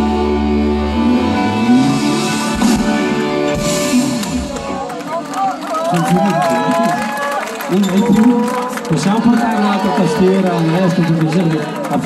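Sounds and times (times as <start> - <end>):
live band music: 0.0 - 5.3
man speaking: 7.7 - 12.0.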